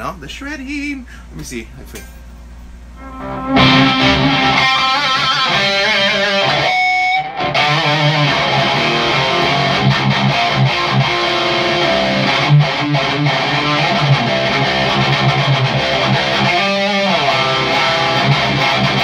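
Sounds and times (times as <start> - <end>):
distorted electric guitar: 3.0 - 19.0.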